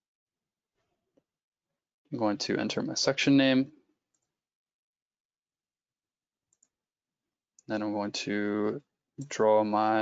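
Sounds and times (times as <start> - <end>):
computer mouse clicks: 4.1 - 4.4, 6.5 - 6.8.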